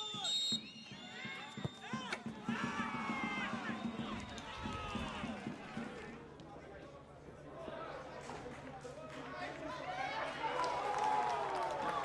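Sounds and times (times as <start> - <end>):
football match background sound: 0.0 - 7.1.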